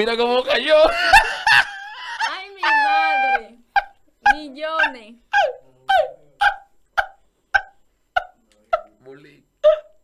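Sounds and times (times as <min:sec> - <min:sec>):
man laughing hard: 0:00.9 - 0:02.4.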